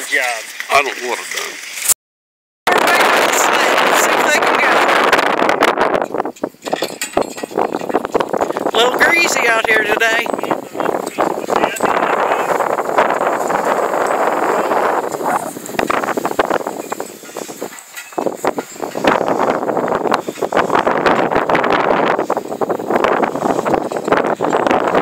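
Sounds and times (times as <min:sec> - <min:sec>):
sled scraping over dirt: 0:02.7 - 0:25.0.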